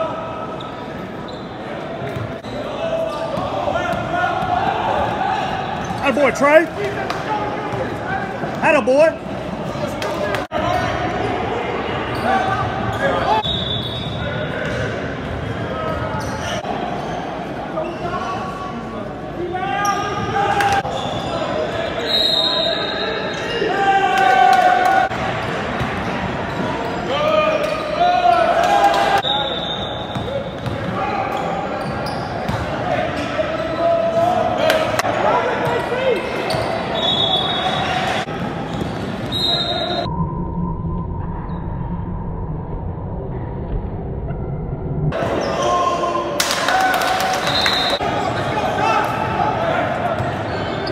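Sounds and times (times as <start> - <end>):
sneaker squeaks: 0.6 - 3.5, 5.5 - 6.4, 12.1 - 14.8, 15.8 - 18.4, 19.7 - 23.8, 25.8 - 27.0, 29.2 - 34.2, 35.6 - 40.1, 50.2 - 50.9
players and spectators shouting: 2.4 - 13.5, 14.2 - 38.7, 45.1 - 50.9.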